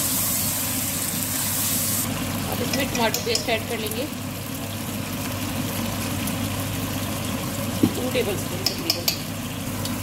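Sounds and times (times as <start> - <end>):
food simmering in oil: 0.0 - 10.0.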